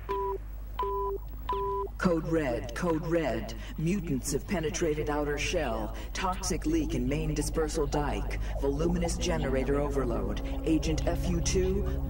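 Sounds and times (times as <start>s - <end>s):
two-tone alarm beeps: 0.0s - 1.9s.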